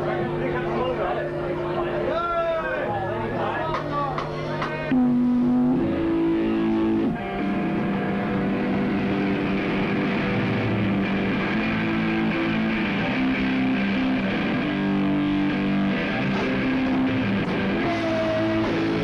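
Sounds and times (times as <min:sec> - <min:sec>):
distorted electric guitar chords: 0:02.8 - 0:19.0.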